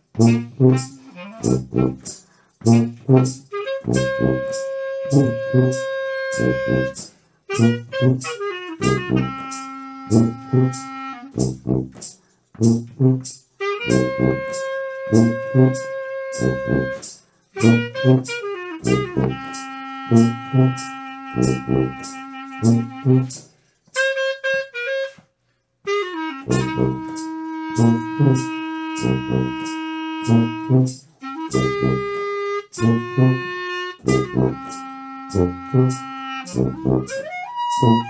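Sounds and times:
jazz group playing: 0.0s - 12.0s, 12.6s - 23.4s, 25.9s - 38.0s
horn playing: 0.0s - 25.2s, 25.9s - 38.0s.

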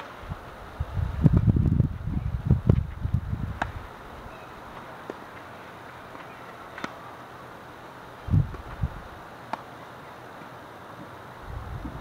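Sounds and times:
wind buffeting microphone: 0.2s - 4.3s, 8.2s - 9.2s, 11.4s - 12.0s
racket striking tennis ball: 3.6s - 3.8s, 6.1s - 7.0s.

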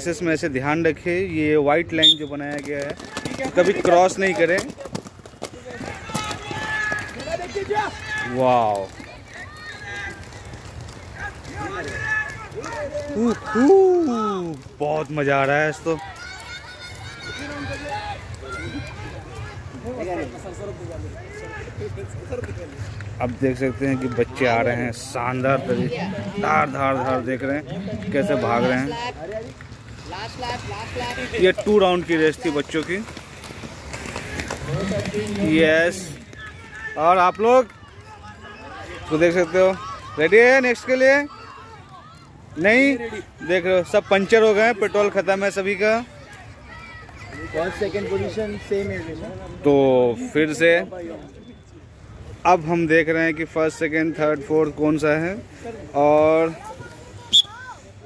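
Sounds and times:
skate wheels clicking on track: 2.0s - 19.6s, 25.6s - 42.8s
skate wheels hissing: 29.8s - 36.4s
voices calling out: 56.5s - 58.0s.

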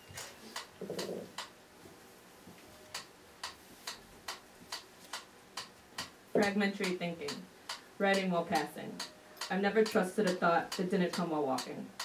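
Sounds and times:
metronome ticking: 2.9s - 12.0s.

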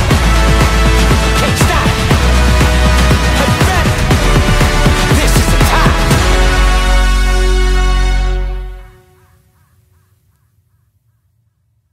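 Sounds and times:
music ending: 0.0s - 9.2s
faint caw-like calls: 8.9s - 11.9s.

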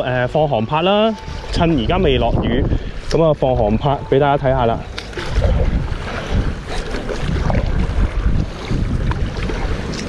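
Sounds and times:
water splashing and lapping: 0.0s - 10.0s
wind buffeting microphone: 0.0s - 10.0s.

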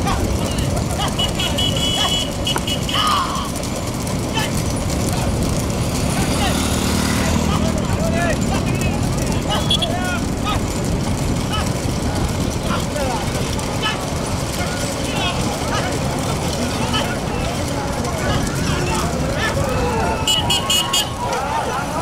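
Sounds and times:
men shouting: 0.0s - 10.8s, 11.4s - 22.0s
motorcycle engines running: 0.0s - 22.0s.

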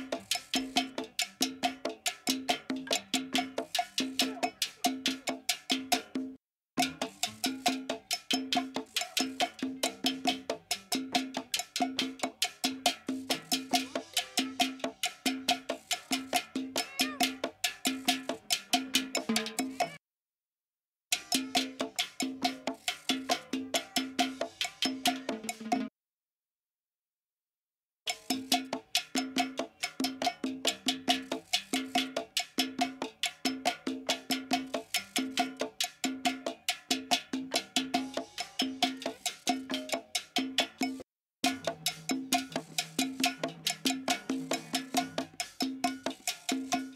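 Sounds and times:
cowbell and hand percussion: 0.0s - 20.0s, 21.1s - 26.0s, 28.0s - 46.9s.

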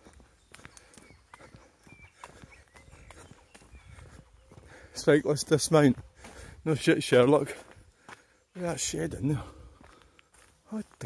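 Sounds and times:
faint footsteps on tarmac: 0.0s - 11.0s.

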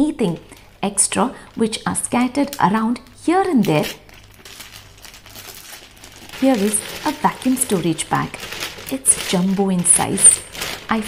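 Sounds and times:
plastic bag crinkling: 0.2s - 11.0s.

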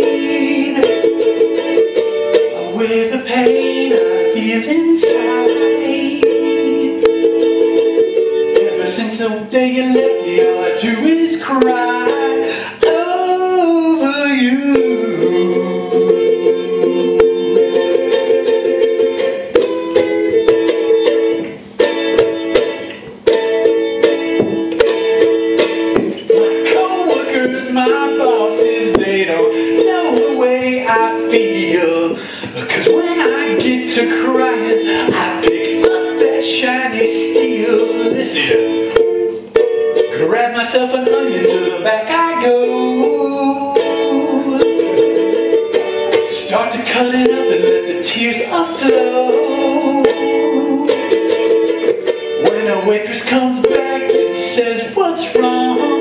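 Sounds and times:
ukulele strummed: 0.0s - 56.0s.

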